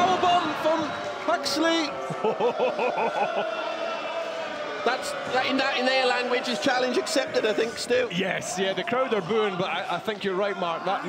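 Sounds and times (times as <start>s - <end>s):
man laughing: 2.1s - 3.5s.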